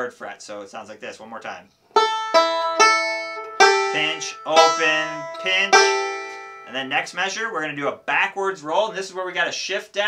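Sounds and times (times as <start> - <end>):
banjo plucks: 1.9 - 7.2.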